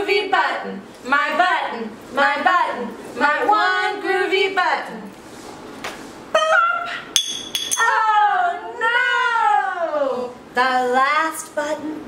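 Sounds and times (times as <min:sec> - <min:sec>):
women singing: 0:00.0 - 0:05.1, 0:07.8 - 0:12.0
woman exclaiming: 0:07.8 - 0:10.2.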